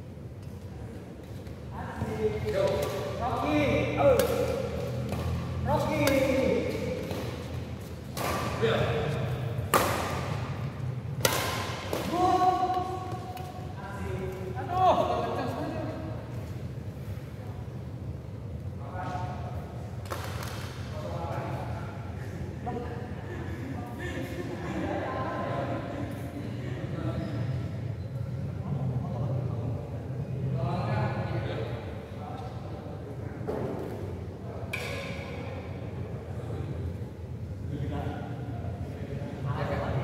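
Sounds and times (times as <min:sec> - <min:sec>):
men talking in echoing hall: 0:00.0 - 0:40.0
steady low hum: 0:00.0 - 0:40.0.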